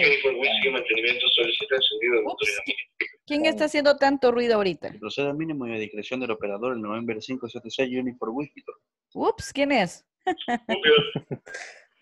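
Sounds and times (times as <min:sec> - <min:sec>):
microphone background noise: 0:00.0 - 0:03.0, 0:10.4 - 0:11.6
overlapping voices on video call: 0:00.0 - 0:07.7, 0:08.3 - 0:11.8.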